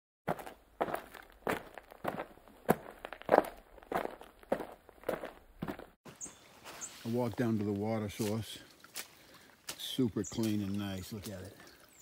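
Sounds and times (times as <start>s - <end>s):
footsteps walking: 0.3s - 9.9s.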